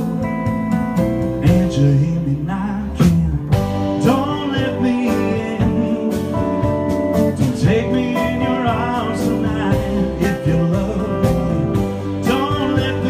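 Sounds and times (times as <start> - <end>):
live band music: 0.0 - 13.0
man singing: 1.3 - 13.0.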